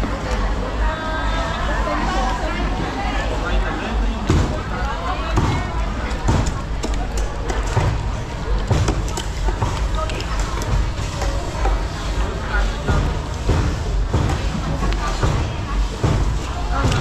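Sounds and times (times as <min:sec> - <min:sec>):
market voices hubbub: 0:00.0 - 0:17.0.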